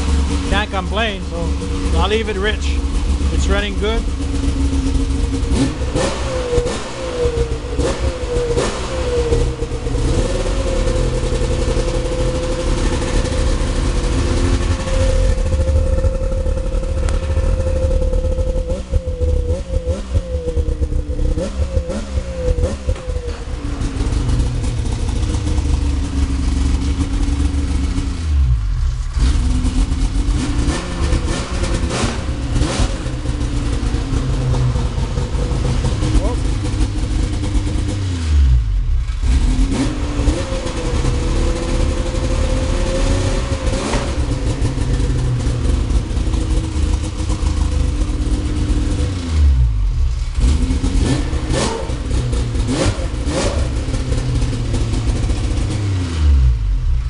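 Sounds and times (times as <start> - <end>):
snowmobile engine running: 0.0 - 49.3, 49.9 - 55.9.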